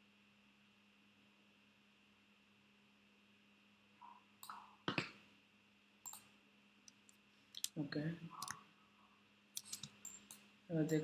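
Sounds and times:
mouse and keyboard clicks: 6.0 - 6.3, 6.9 - 7.8, 9.6 - 11.0.

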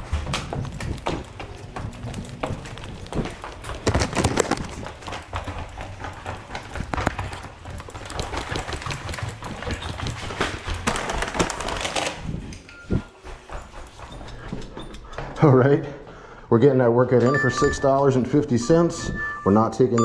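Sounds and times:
paper bag rustling: 0.0 - 5.1, 7.0 - 12.6
footsteps on hard floor: 0.0 - 15.6.

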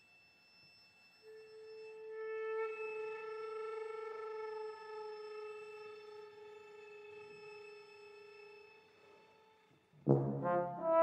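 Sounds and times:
violin long bowed note: 1.2 - 9.5.

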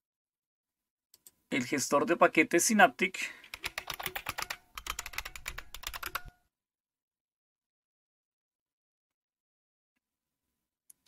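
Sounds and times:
computer keyboard keystrokes: 3.4 - 6.4.

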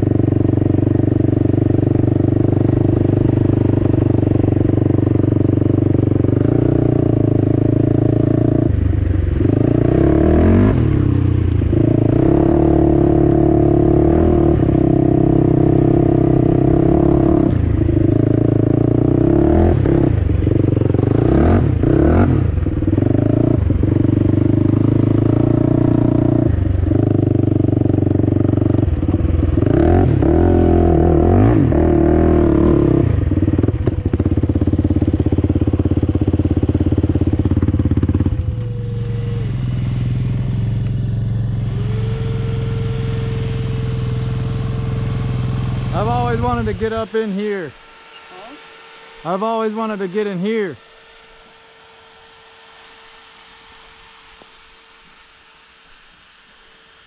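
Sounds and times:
quad rattling over rough ground: 0.0 - 31.2, 31.8 - 55.8
atv engine revving: 0.0 - 53.3.

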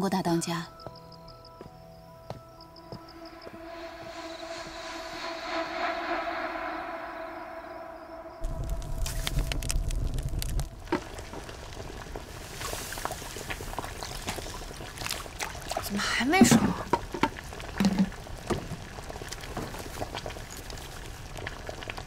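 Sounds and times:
soft background music: 0.0 - 5.9
wok low rumble with crackles: 8.4 - 22.0.

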